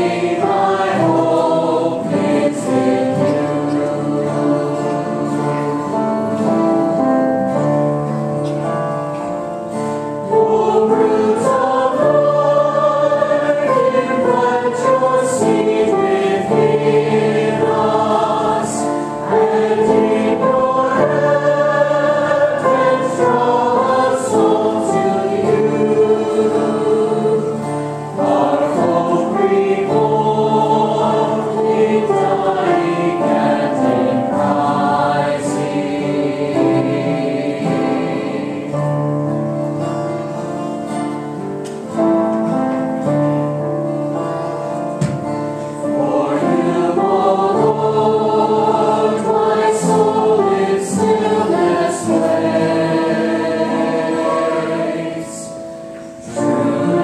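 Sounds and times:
low accompanying notes: 0.0 - 7.4, 10.2 - 39.0, 45.9 - 57.0
choir singing a hymn: 0.0 - 57.0.

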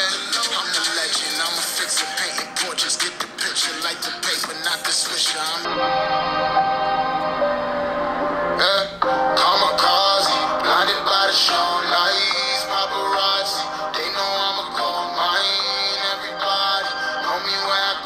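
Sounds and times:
rock song with singing: 0.0 - 7.2, 8.5 - 18.0.

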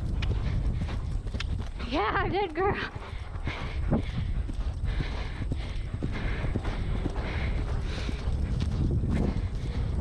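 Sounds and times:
horse hoofbeats cantering: 0.0 - 10.0.

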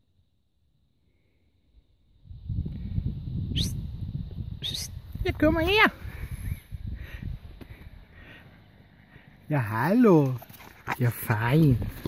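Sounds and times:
low wind rumble on microphone: 1.8 - 8.4.

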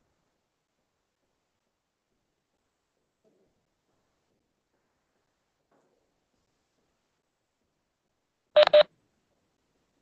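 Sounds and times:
short electronic beeps: 8.6 - 8.9.

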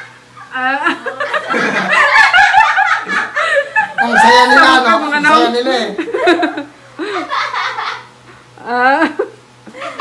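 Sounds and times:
young people laughing: 0.5 - 8.2, 8.8 - 10.0.

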